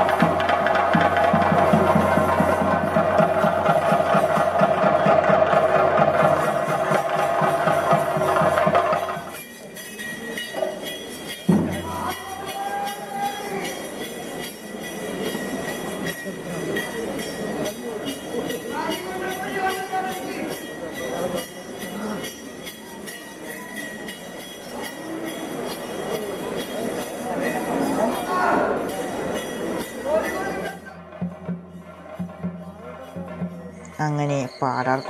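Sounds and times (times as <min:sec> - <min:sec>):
crowd background: 0:00.0 - 0:35.0
rapid temple drumming: 0:00.0 - 0:35.0.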